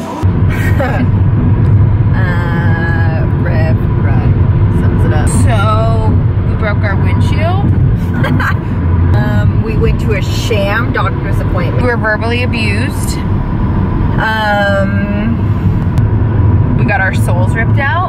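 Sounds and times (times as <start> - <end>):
car road and engine rumble: 0.0 - 18.0
women laughing and talking: 0.5 - 1.1, 8.0 - 9.4.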